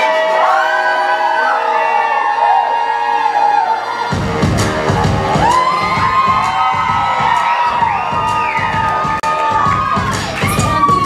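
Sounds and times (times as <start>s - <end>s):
audience cheering and whooping: 0.0s - 11.0s
person singing over heavy beat: 9.1s - 11.0s.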